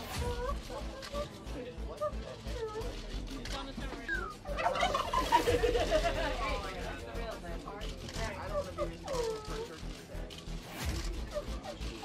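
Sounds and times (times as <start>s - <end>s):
turkey gobbling: 4.2s - 5.9s.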